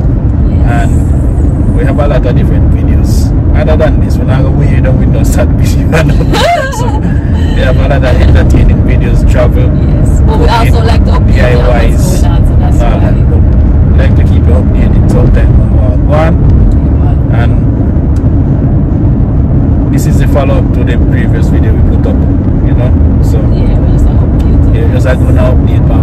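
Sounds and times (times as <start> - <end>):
car interior rumble: 0.0 - 26.0
people talking: 0.4 - 17.7, 19.9 - 26.0.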